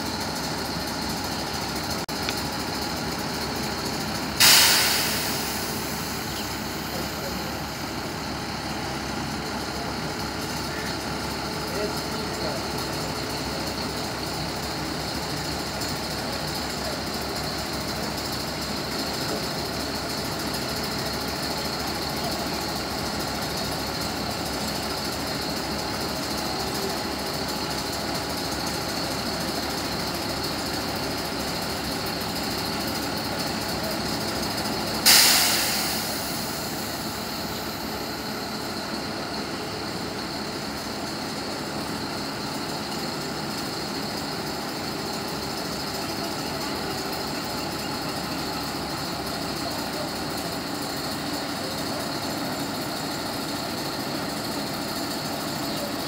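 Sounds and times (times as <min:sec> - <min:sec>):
crane engine running: 0:00.0 - 0:56.0.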